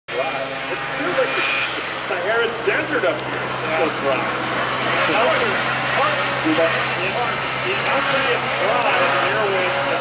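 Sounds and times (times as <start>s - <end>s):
people talking: 0.1s - 10.0s
snowmobile engines running: 0.1s - 10.0s.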